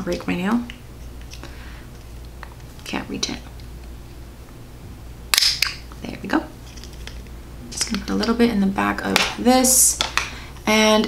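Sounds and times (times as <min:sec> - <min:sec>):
plastic snap: 0:05.4 - 0:05.9.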